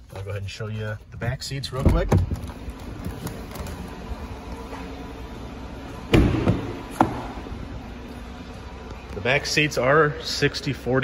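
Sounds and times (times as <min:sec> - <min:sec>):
truck door thump: 0:06.1 - 0:07.3.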